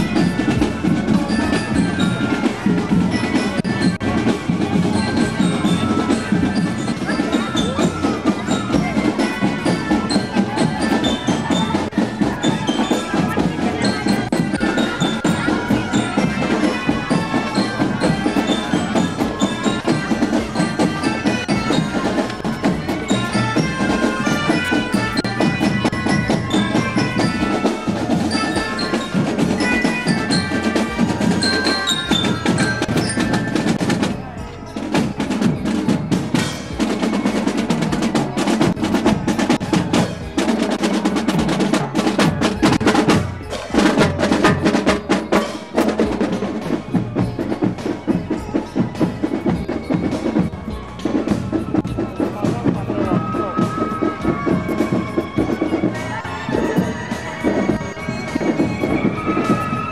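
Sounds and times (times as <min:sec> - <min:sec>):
melodicas playing a melody: 0:00.0 - 0:59.9.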